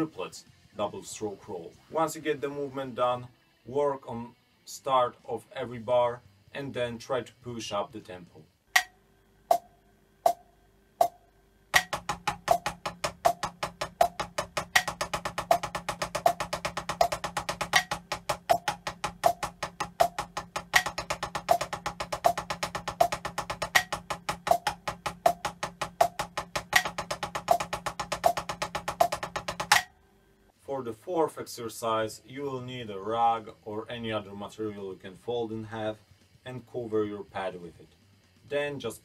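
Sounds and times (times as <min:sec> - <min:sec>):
drumsticks on practice pad: 0:08.8 - 0:29.9.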